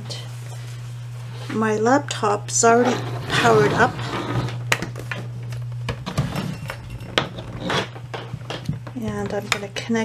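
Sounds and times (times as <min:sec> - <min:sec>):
low hum: 0:02.4 - 0:09.6.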